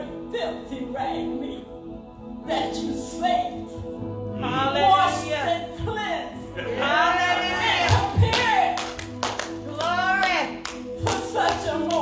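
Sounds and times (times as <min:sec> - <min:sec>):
hand claps: 0:07.9 - 0:12.0.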